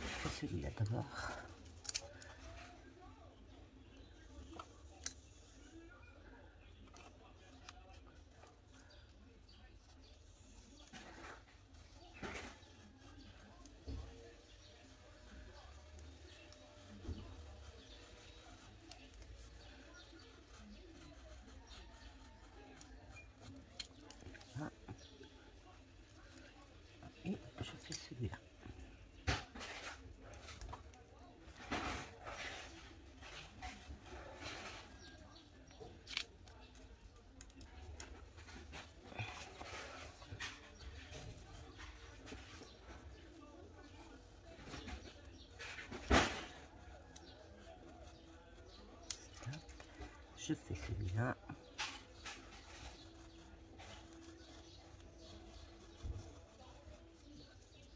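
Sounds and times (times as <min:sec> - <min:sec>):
faint voice: 0:00.0 - 0:57.9
craft knife cutting paper: 0:51.8 - 0:57.9.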